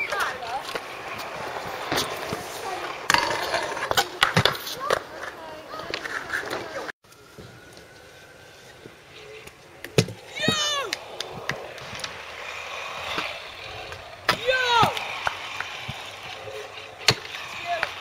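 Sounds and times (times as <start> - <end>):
scooter clacking on ground: 0.0 - 6.8, 9.3 - 18.0
quiet outdoor background: 0.0 - 18.0
scooter wheels rolling on concrete: 0.0 - 18.0.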